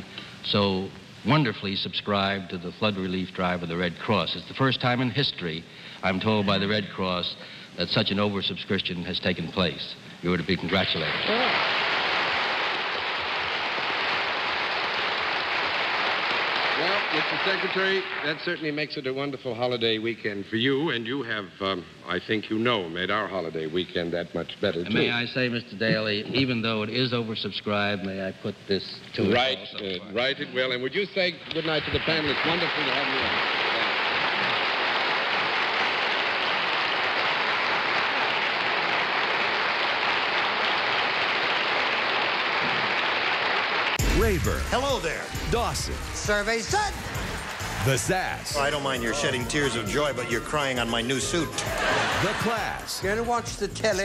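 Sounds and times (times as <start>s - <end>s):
man's voice: 0.5s - 11.4s, 20.1s - 33.3s, 44.0s - 54.0s
audience applauding: 10.7s - 18.8s, 31.5s - 53.4s.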